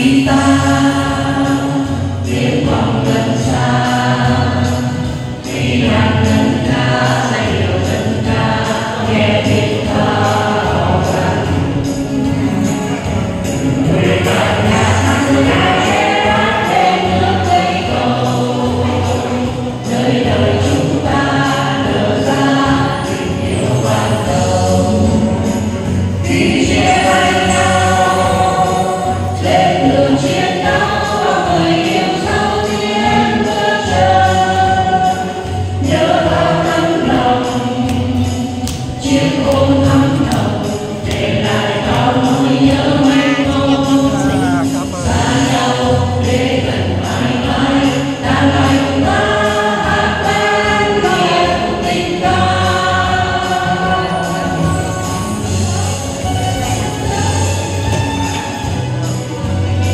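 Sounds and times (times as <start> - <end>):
acoustic guitar: 0.0 - 59.9
group of voices singing: 0.0 - 59.9.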